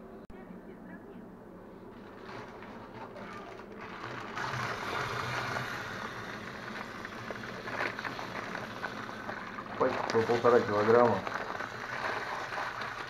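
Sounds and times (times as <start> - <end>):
plastic bag rustling: 1.9 - 13.0.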